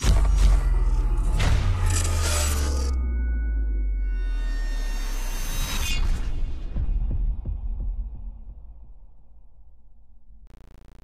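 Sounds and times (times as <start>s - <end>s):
low hum: 10.5s - 11.0s.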